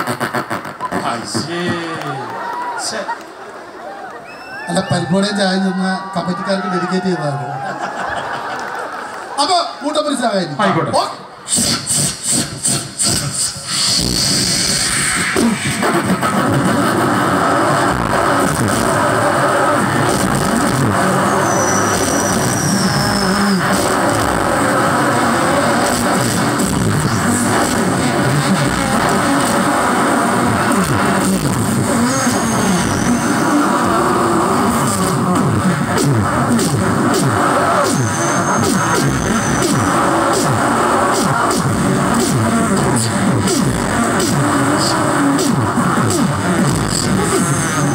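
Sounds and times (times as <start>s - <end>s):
men beatboxing through loudspeakers: 0.0s - 3.4s, 10.8s - 47.9s
high whistle: 21.1s - 23.6s, 32.0s - 33.8s, 37.8s - 40.2s.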